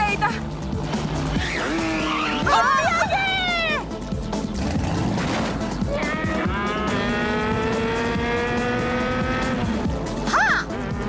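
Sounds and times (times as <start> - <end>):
cartoon background music: 0.0 - 11.0
motor scooters buzzing: 4.4 - 11.0.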